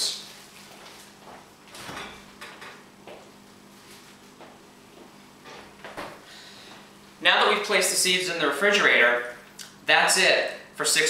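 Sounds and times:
refrigerator door opening and shutting: 1.7 - 2.8.

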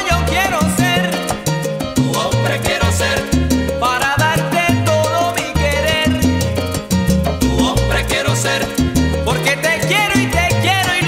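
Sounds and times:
salsa band music: 0.0 - 11.0.

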